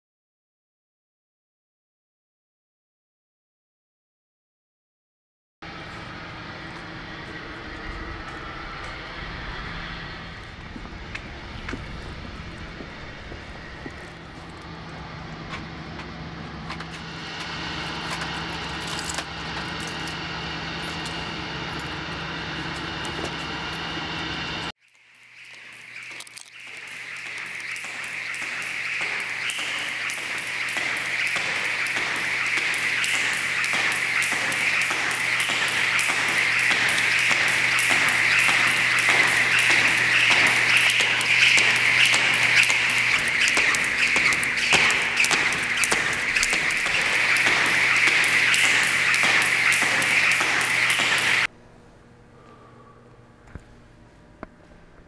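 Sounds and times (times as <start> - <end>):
low urban hum: 5.6 - 55.0
hissy droning noise: 5.7 - 53.6.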